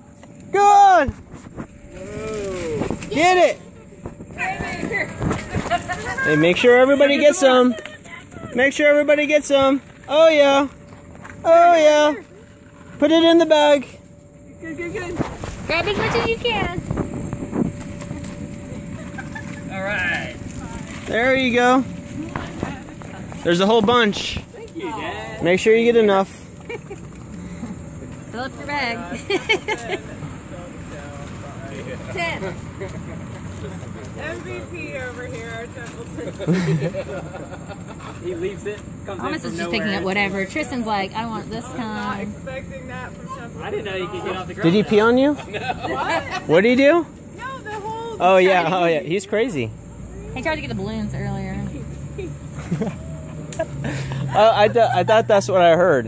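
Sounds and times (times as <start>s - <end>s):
low outdoor noise: 0.0s - 56.0s.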